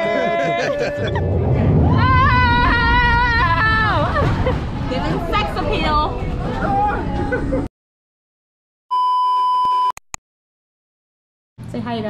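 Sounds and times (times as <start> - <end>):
crowd babble: 2.8 - 7.7.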